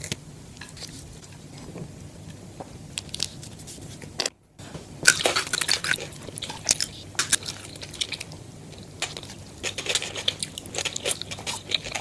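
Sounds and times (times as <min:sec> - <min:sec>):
crunchy chewing of fries: 0:05.0 - 0:12.0.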